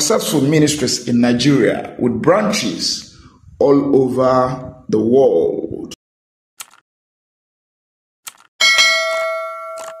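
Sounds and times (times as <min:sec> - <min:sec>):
bell-like ding: 0:08.6 - 0:10.0.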